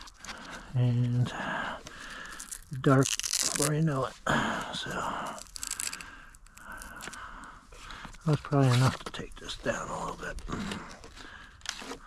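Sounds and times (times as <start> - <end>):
hook-and-loop strap tearing open: 0.0 - 1.1, 1.8 - 3.9, 4.9 - 7.3, 8.0 - 9.3, 10.3 - 12.0.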